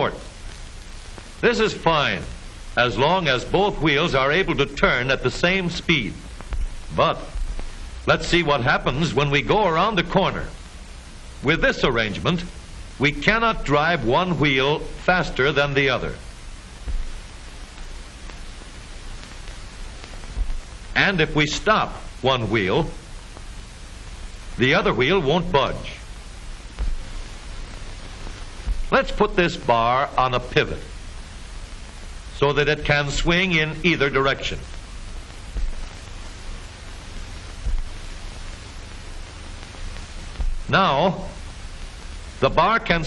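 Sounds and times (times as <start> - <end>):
film soundtrack hiss and rumble: 0.0 - 43.0
faint low thumps: 5.9 - 9.0, 16.0 - 21.0, 22.9 - 29.8, 33.9 - 42.4
low bumps: 35.4 - 36.1, 40.4 - 40.8.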